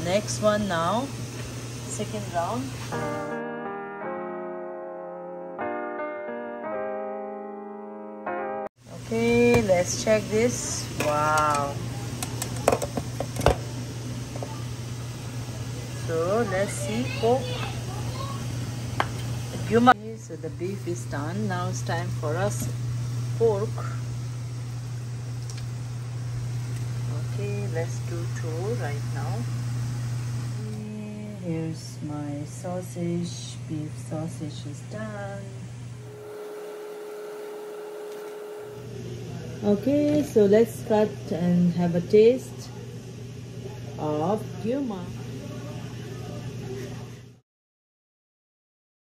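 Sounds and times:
steady low hum: 0:08.9 - 0:47.4.

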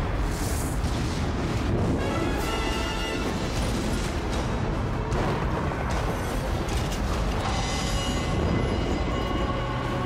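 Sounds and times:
faint dramatic music: 0:00.0 - 0:10.0.

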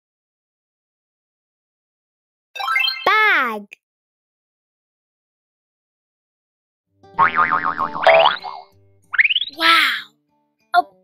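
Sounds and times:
cartoon boing: 0:07.2 - 0:08.7.

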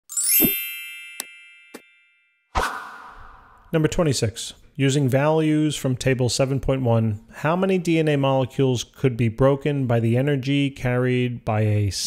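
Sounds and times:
bright chime: 0:00.1 - 0:02.5.

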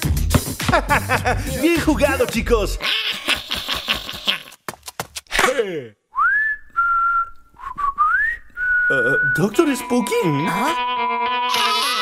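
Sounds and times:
person whistling a tune: 0:06.1 - 0:09.6.

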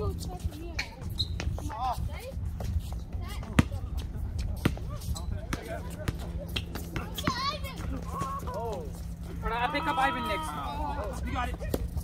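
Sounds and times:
distant players' voices: 0:00.0 - 0:12.0
basketball bouncing on concrete: 0:01.0 - 0:08.4.

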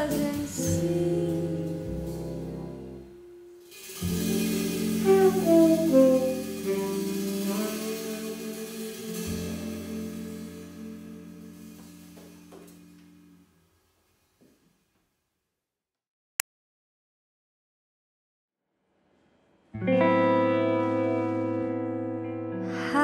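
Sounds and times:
jazz band playing: 0:00.0 - 0:13.1
drums: 0:00.0 - 0:13.4
double bass: 0:00.0 - 0:13.5
guitar: 0:00.0 - 0:13.6, 0:19.7 - 0:23.0
saxophone: 0:02.2 - 0:12.0.

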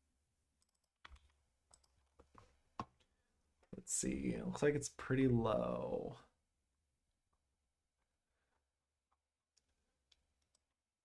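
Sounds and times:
computer mouse clicks: 0:00.6 - 0:02.0.

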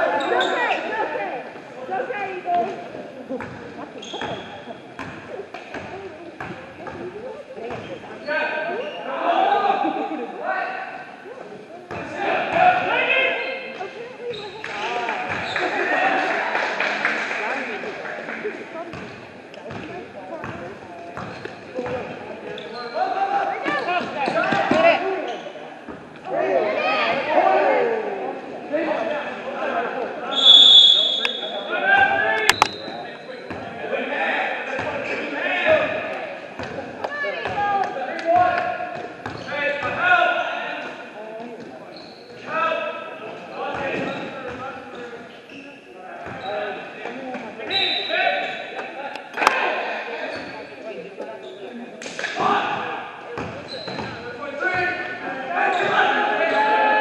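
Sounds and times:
echoing voices: 0:00.0 - 0:57.0.

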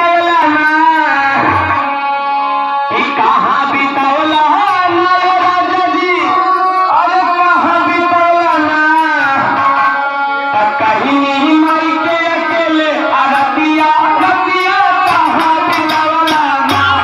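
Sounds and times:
man singing into a microphone: 0:00.0 - 0:17.0
sustained instrumental accompaniment: 0:00.0 - 0:17.0
hand drum: 0:13.3 - 0:17.0.

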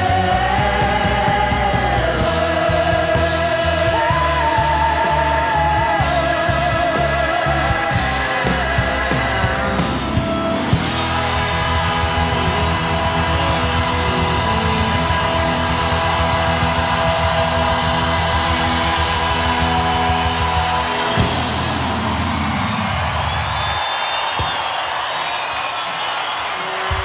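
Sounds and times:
rock band holding chord: 0:00.0 - 0:24.9
crowd noise: 0:00.0 - 0:27.0.

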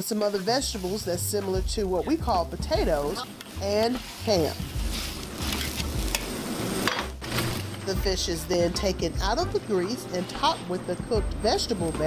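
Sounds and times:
vegetables sizzling in a wok: 0:00.0 - 0:08.5.

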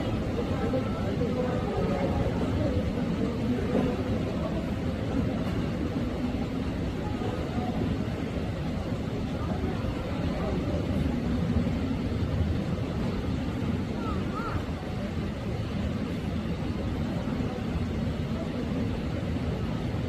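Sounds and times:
murmur of people talking: 0:00.0 - 0:20.0
steady low rumble: 0:00.0 - 0:20.0.

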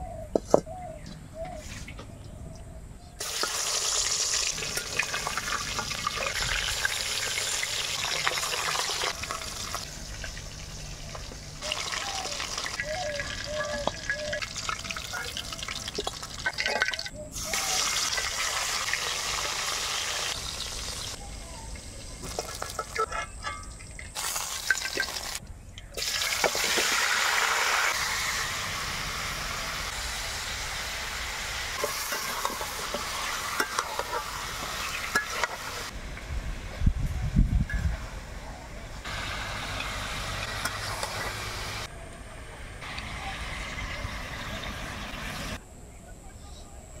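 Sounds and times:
fish sizzling in hot oil: 0:03.2 - 0:21.2, 0:23.8 - 0:25.4, 0:26.0 - 0:35.9, 0:39.1 - 0:41.9
metal spatula scraping pan: 0:22.4 - 0:23.8.

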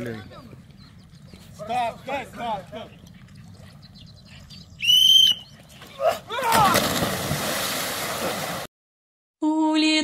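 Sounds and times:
whistle blast: 0:04.8 - 0:05.4.

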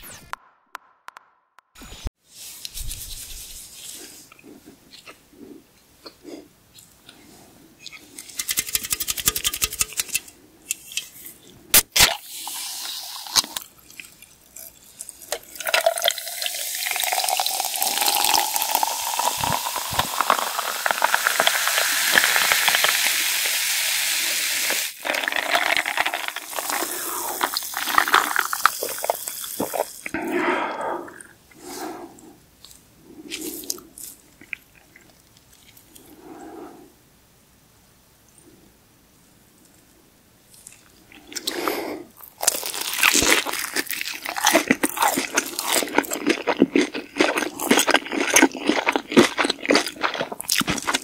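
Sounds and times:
rapid clicks: 0:08.2 - 0:10.3
fizzy drink pouring into glass: 0:14.7 - 0:30.1.

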